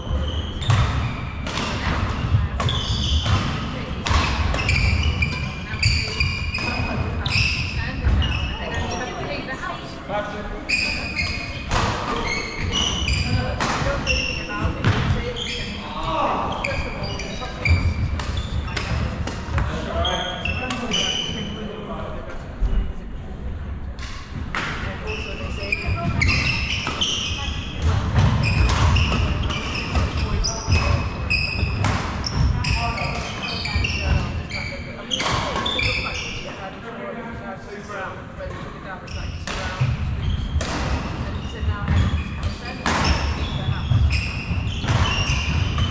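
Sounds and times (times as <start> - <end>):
court shoes squeaking: 0.0 - 9.7, 10.6 - 21.6, 24.0 - 36.8, 38.4 - 45.9
voices in a hall: 0.0 - 45.9
rackets hitting shuttlecock: 0.7 - 8.2, 27.8 - 31.0, 39.4 - 41.2.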